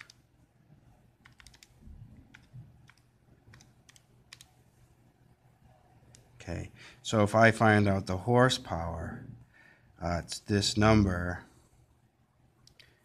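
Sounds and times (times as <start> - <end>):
faint clicks: 12.6 - 13.0.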